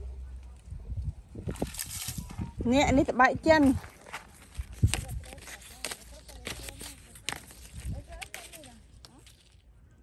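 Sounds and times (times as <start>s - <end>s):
leaves and twigs rustling: 0.2s - 10.0s.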